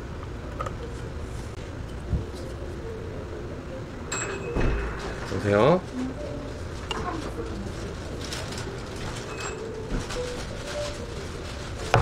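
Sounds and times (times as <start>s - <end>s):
low cafe hum: 0.0s - 12.0s.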